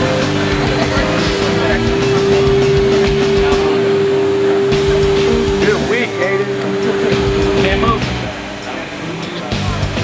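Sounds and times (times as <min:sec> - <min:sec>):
background music: 0:00.0 - 0:10.0
factory machinery humming: 0:00.0 - 0:10.0
faint voices: 0:00.0 - 0:10.0.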